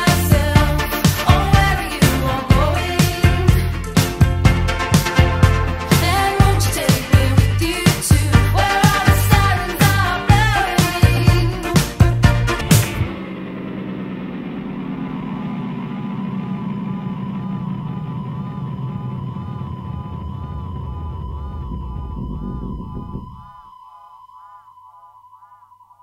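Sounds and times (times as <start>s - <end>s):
low rumbling drone: 0.0s - 25.8s
warbling synthesizer tone: 12.6s - 26.0s.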